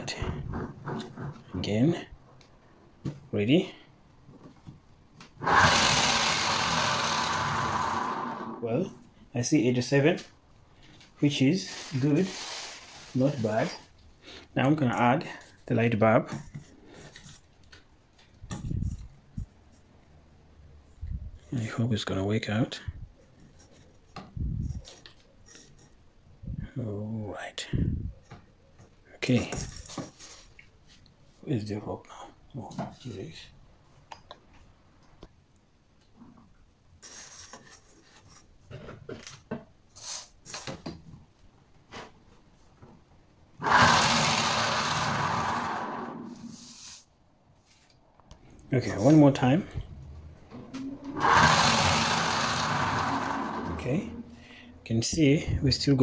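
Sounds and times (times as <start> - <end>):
generator whirring: 5.4 - 8.7, 43.6 - 46.6, 50.5 - 54.7.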